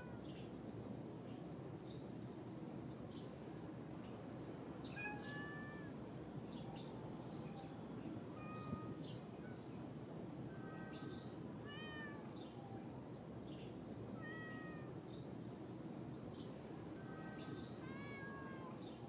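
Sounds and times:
cat meowing softly: 0:00.0 - 0:00.4, 0:04.8 - 0:06.0, 0:08.3 - 0:09.6, 0:10.5 - 0:12.8, 0:14.2 - 0:15.0, 0:17.0 - 0:19.0.

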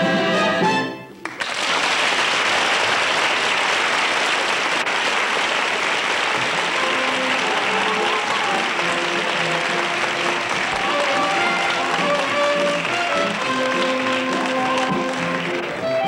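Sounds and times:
band music: 0:00.0 - 0:01.2, 0:06.4 - 0:16.0
audience applauding and cheering: 0:01.2 - 0:16.0.

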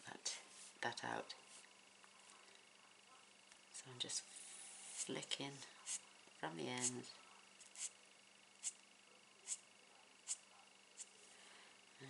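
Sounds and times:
marker strokes on cardstock: 0:04.4 - 0:05.2, 0:05.8 - 0:06.0, 0:07.6 - 0:08.0, 0:09.4 - 0:09.6, 0:10.2 - 0:10.4.

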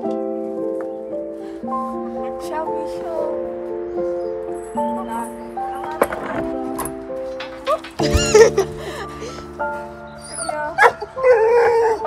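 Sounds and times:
background music: 0:00.0 - 0:12.0
dog howling: 0:10.2 - 0:12.0.

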